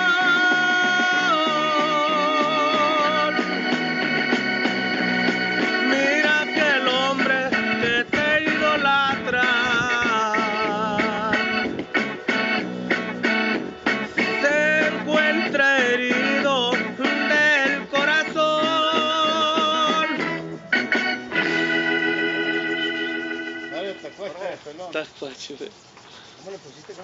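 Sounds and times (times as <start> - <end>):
man singing a romantic ballad: 0.0 - 3.6, 5.8 - 11.6, 14.4 - 20.3.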